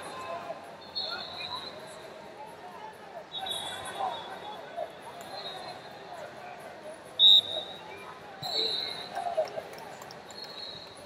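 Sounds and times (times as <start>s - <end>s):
arena crowd murmur: 0.0s - 11.0s
referee's whistle blasts: 3.3s - 4.6s, 7.2s - 7.8s, 8.4s - 9.2s.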